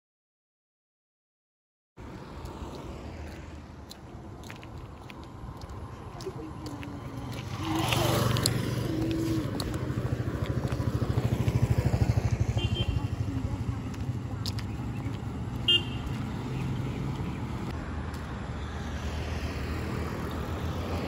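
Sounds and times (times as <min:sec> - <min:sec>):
vehicle engine rumble: 0:02.0 - 0:21.0.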